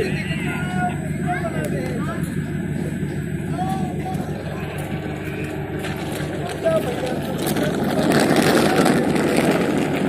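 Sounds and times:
people calling out: 0:00.0 - 0:07.0
train diesel engine idling: 0:00.0 - 0:10.0.

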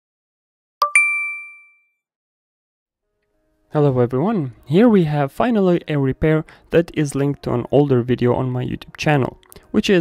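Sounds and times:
two-tone chime: 0:00.8 - 0:02.0.

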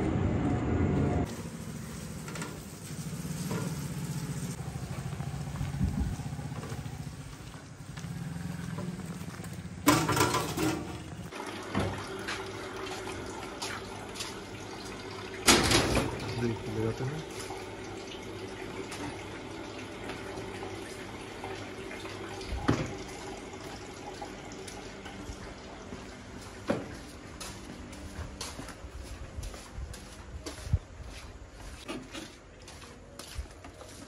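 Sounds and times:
knocks and scrapes: 0:02.2 - 0:04.0, 0:31.8 - 0:32.4
metal furniture clattering: 0:09.8 - 0:11.2.

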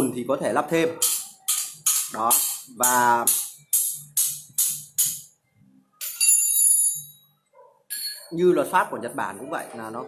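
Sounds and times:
high metallic bell ringing: 0:06.0 - 0:07.2, 0:07.9 - 0:08.3.

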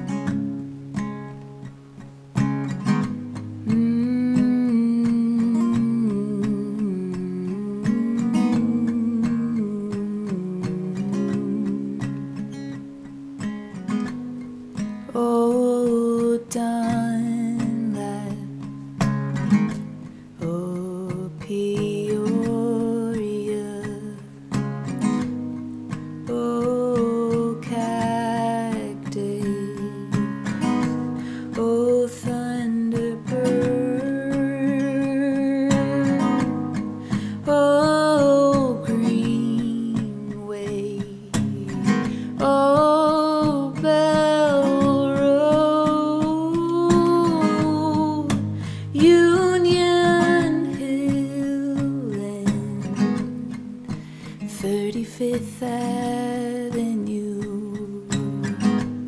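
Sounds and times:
acoustic guitar strumming: 0:00.0 - 0:59.0
woman singing: 0:02.8 - 0:12.8, 0:14.8 - 0:59.0.

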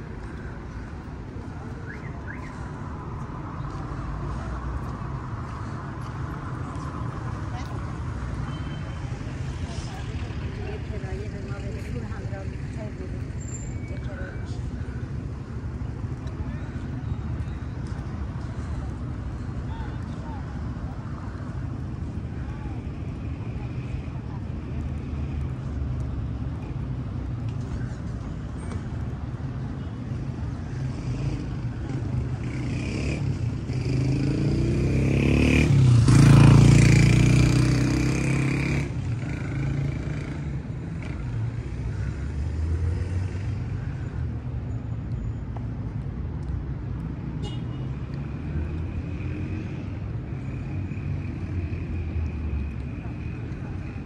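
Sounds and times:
road traffic rumble: 0:00.0 - 0:54.0
motor vehicle passing: 0:30.4 - 0:44.4.

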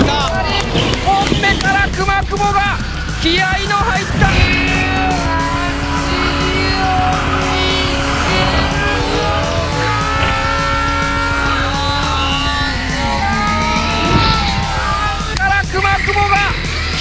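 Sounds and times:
background music: 0:00.0 - 0:17.0
tires squealing: 0:00.0 - 0:17.0
car engine revving high: 0:00.5 - 0:17.0.

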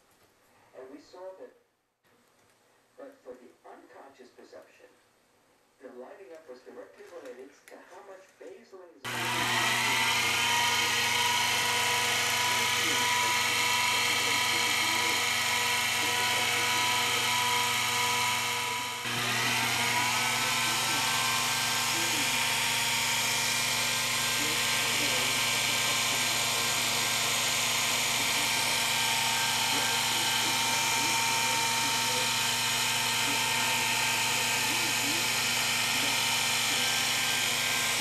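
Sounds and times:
milling machine motor spinning: 0:09.1 - 0:38.0.

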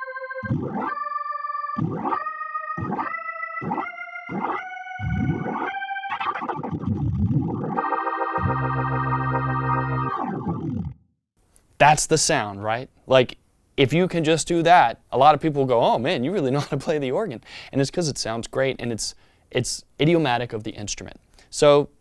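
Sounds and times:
organ glissandos and chords: 0:00.0 - 0:11.1.

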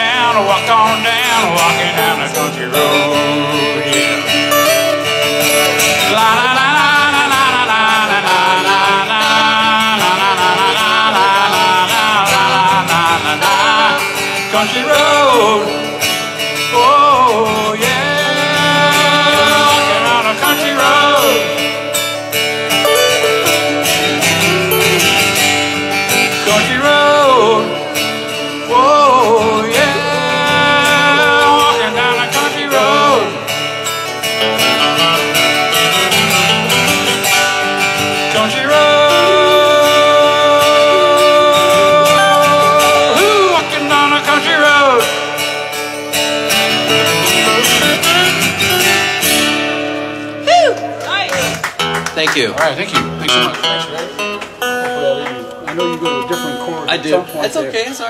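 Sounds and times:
person singing: 0:00.0 - 0:22.0, 0:22.8 - 0:33.6, 0:36.1 - 0:45.2, 0:47.1 - 0:49.2
acoustic guitars strummed and picked: 0:00.0 - 0:58.0.

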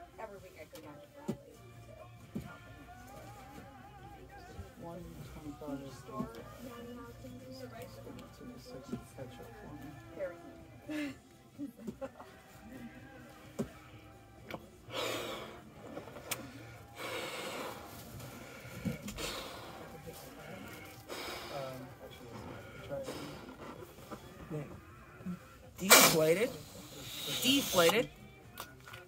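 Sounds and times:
breaths blowing up balloon: 0:14.9 - 0:24.2, 0:25.2 - 0:28.0.

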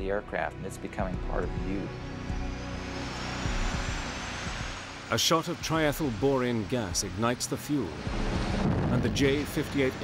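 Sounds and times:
high whine rising in pitch: 0:01.3 - 0:10.0
jet engine spooling up: 0:01.5 - 0:10.0.

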